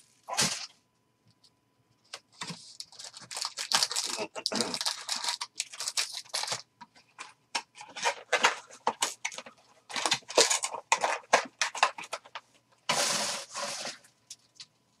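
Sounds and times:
foil packs crinkling and rustling: 0:02.4 - 0:06.7, 0:07.8 - 0:14.1.

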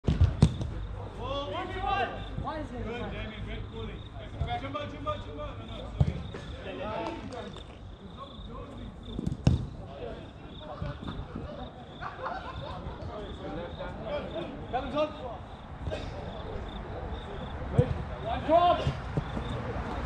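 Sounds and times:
soccer ball kicks: 0:00.0 - 0:00.8, 0:06.0 - 0:06.4, 0:09.2 - 0:09.8, 0:18.8 - 0:19.6
players shouting: 0:18.2 - 0:20.0.

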